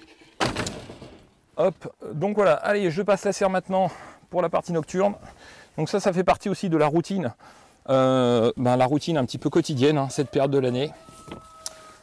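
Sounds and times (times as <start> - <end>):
object knocking down hard: 0.4 - 1.3.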